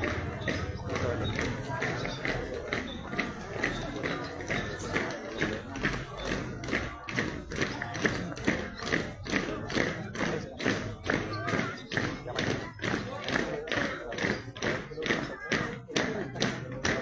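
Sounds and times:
marching drums: 0:00.0 - 0:17.0
people's voices: 0:00.0 - 0:17.0.

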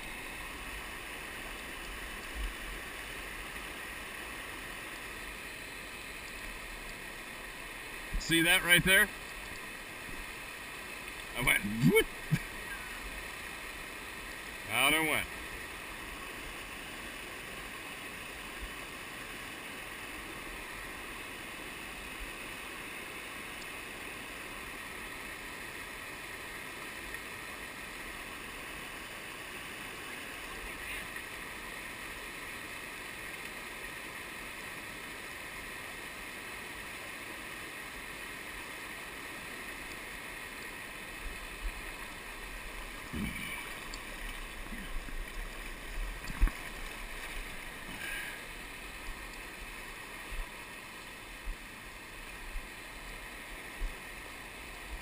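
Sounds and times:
river rapids rushing: 0:00.0 - 0:17.4, 0:28.2 - 0:55.0.

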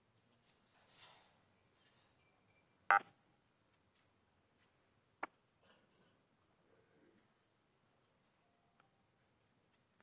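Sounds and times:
soft rustle: 0:00.0 - 0:02.6.

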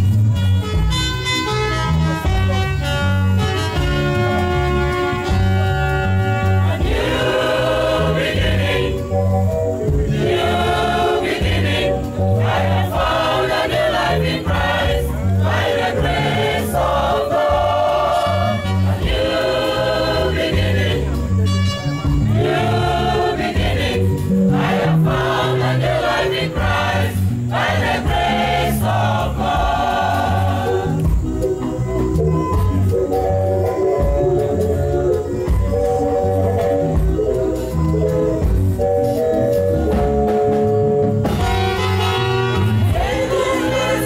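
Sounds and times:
instruments playing along: 0:00.0 - 0:44.0
steady bass line: 0:00.0 - 0:44.0
gospel choir singing: 0:04.1 - 0:31.8, 0:38.4 - 0:44.0.

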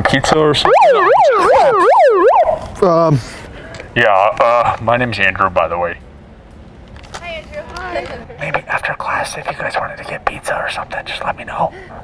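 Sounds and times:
megaphone siren wailing: 0:00.6 - 0:02.6.

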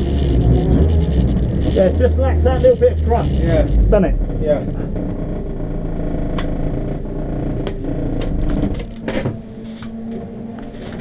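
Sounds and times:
race car engine idling: 0:00.0 - 0:11.0.

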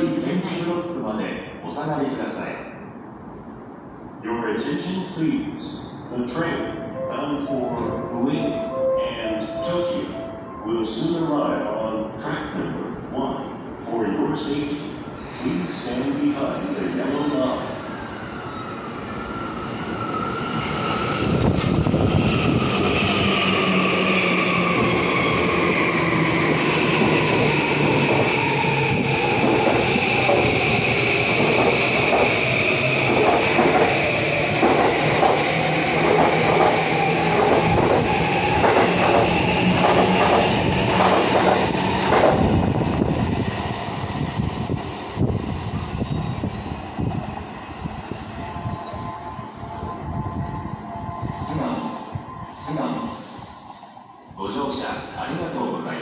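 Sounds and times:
train wheels clacking over rails: 0:26.9 - 0:42.6.

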